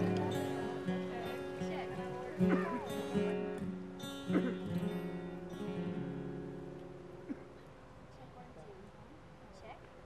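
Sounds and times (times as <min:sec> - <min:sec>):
acoustic guitar strumming chords: 0:00.0 - 0:07.6.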